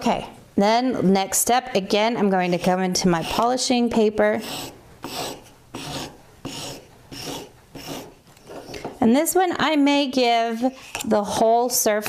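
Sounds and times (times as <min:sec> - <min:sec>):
polishing paper rasping on metal: 0:04.3 - 0:08.1.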